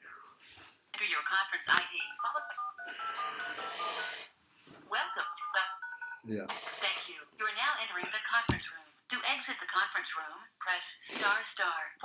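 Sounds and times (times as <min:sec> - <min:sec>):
phone keypad touch-tone beeps: 0:02.0 - 0:04.2, 0:05.1 - 0:06.2.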